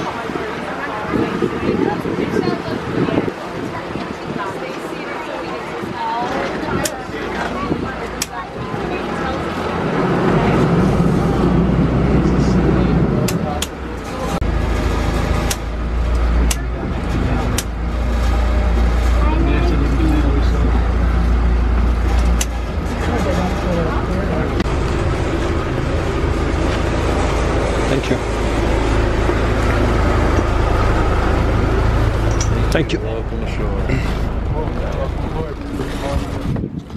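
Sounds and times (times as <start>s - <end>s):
voices: 0.0s - 14.6s, 15.2s - 36.8s
boat engine low rumble: 0.0s - 36.9s.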